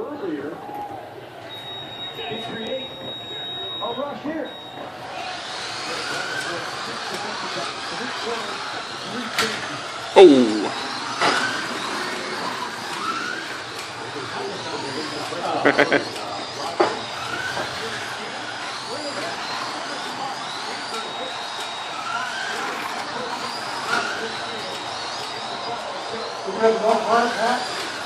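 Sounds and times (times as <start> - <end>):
slot car motors whining: 0.4 - 28.0.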